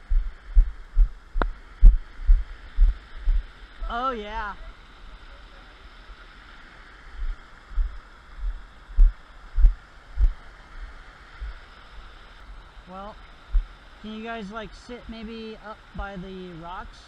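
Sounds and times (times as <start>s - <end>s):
stream and waterfall rushing: 0.0s - 17.0s.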